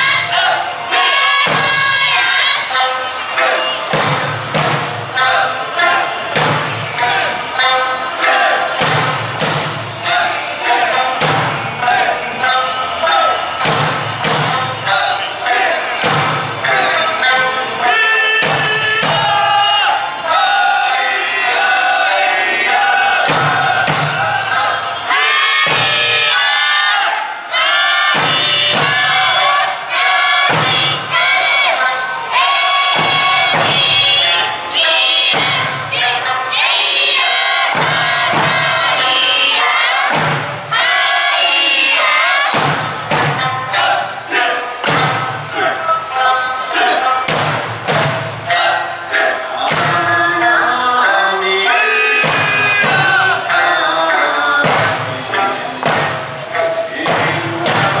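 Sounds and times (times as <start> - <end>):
folk song singing: 0.0 - 58.0
steady drum beat: 3.4 - 17.3, 18.4 - 19.8, 22.6 - 26.4, 28.0 - 31.8, 32.7 - 45.8, 46.7 - 50.5, 51.6 - 58.0.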